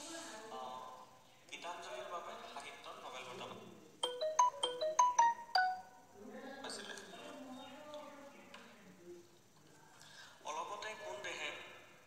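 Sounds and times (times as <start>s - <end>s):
marimba-like ringtone melody: 4.0s - 6.0s.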